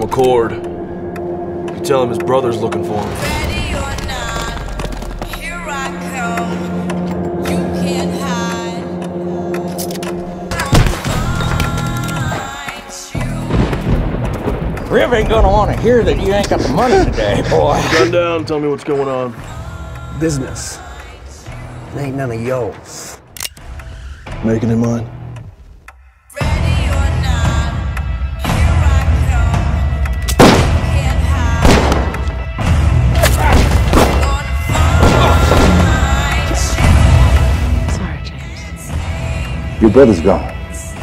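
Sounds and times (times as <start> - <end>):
film score with held tones: 0.0 - 41.0.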